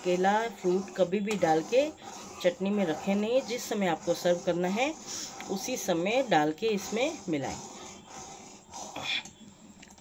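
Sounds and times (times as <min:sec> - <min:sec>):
ladle stirring: 0:00.0 - 0:09.1.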